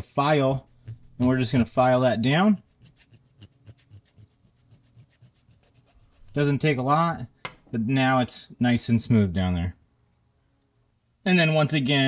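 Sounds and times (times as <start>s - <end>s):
file rubbing on metal: 0.6s - 6.6s.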